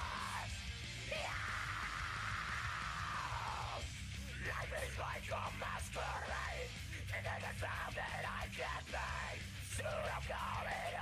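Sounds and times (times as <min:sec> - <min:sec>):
heavy metal backing track: 0:00.0 - 0:11.0.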